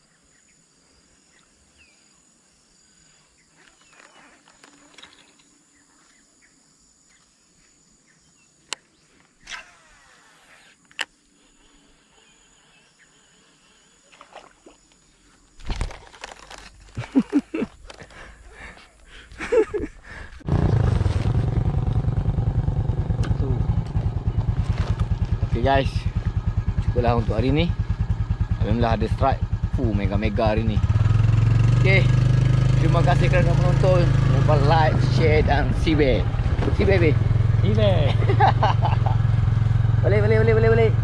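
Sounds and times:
motorcycle engine running: 0:20.4 - 0:41.0.

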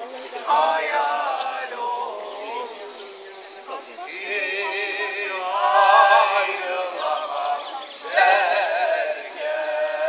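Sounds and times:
men singing unaccompanied: 0:00.3 - 0:10.0.

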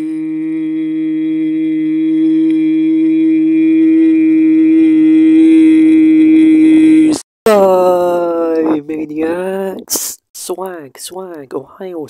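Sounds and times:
long buzzy held note: 0:00.0 - 0:07.2.

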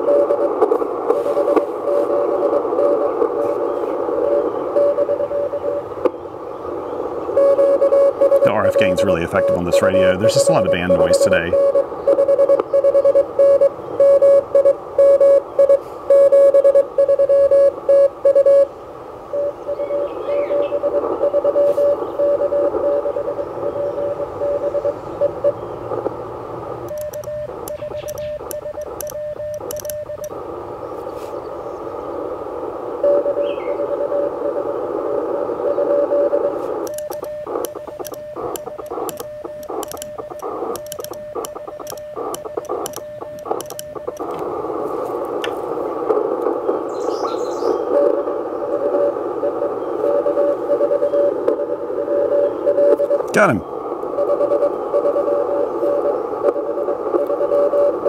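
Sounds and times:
radio band noise hiss: 0:00.0 - 0:58.0
sidetone beeps: 0:01.1 - 0:05.8, 0:07.3 - 0:18.7, 0:19.3 - 0:25.6, 0:26.9 - 0:30.4, 0:33.0 - 0:34.7, 0:35.6 - 0:44.3, 0:47.0 - 0:58.0
morse code tone: 0:04.2 - 0:05.8, 0:07.3 - 0:18.7, 0:19.3 - 0:25.6, 0:26.9 - 0:30.4, 0:33.0 - 0:34.7, 0:35.6 - 0:44.4, 0:47.9 - 0:58.0.

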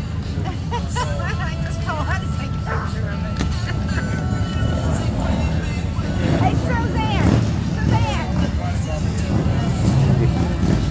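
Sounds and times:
indistinct voices: 0:00.8 - 0:10.9.

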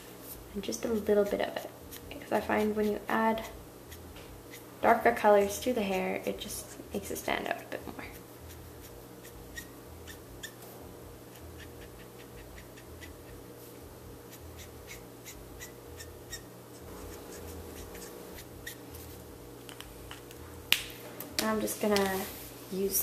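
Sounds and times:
steady low hum: 0:00.0 - 0:23.0
marker scratching on paper: 0:08.0 - 0:10.6, 0:11.3 - 0:13.4, 0:14.3 - 0:19.2.

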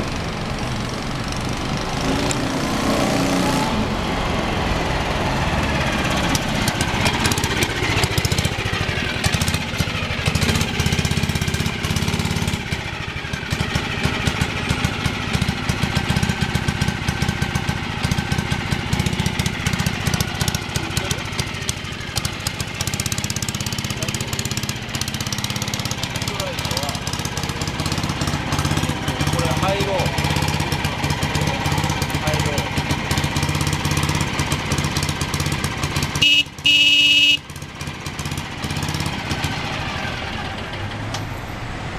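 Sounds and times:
scooter engine running: 0:00.0 - 0:41.2.

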